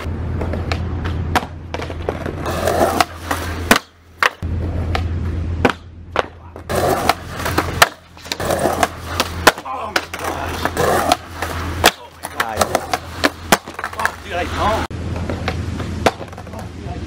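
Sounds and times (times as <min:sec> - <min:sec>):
skateboard clacking on ground: 0:00.0 - 0:14.4, 0:15.1 - 0:16.8
skateboard wheels rolling on concrete: 0:00.0 - 0:17.0.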